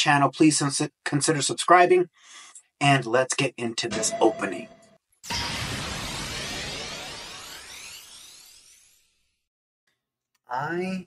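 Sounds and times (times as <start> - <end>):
noisy whoosh with rising shimmer: 3.9 - 9.3.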